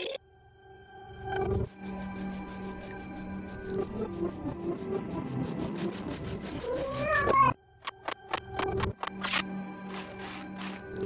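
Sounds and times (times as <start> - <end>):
cartoon soundtrack music: 1.5 - 11.0.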